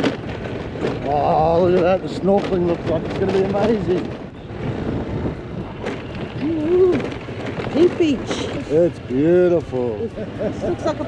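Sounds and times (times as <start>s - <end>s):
wind on microphone: 0.0s - 9.8s
motorbike running at low speed: 0.0s - 11.0s.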